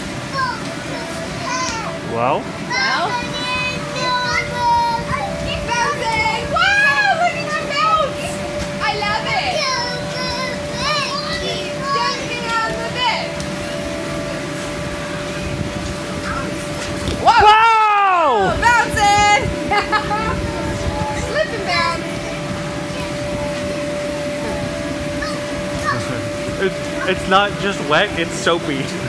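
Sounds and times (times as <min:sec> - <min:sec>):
faint steady hum: 0:00.0 - 0:29.0
children calling out and squealing: 0:02.6 - 0:13.3, 0:25.0 - 0:26.4.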